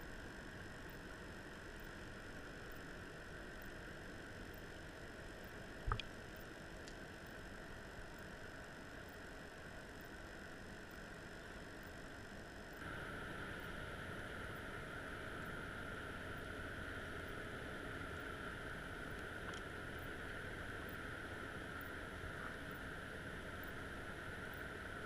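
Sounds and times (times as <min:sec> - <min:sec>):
faint hum: 0:00.0 - 0:25.0.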